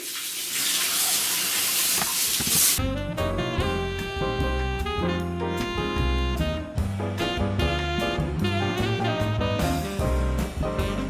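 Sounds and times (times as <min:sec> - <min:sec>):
tap water running into sink: 0:00.0 - 0:02.8
background music: 0:02.8 - 0:11.0.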